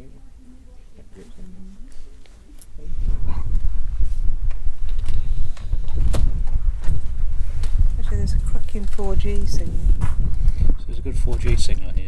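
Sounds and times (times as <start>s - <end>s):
wind buffeting microphone: 2.8s - 12.0s.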